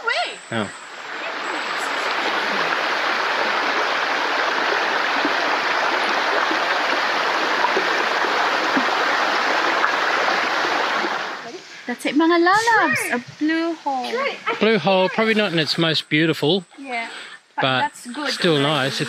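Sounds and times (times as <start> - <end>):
creek rushing over rocks: 1.0 - 11.6.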